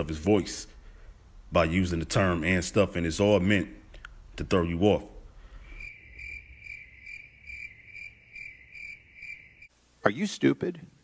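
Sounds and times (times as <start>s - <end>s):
cricket chirping: 5.6s - 9.8s.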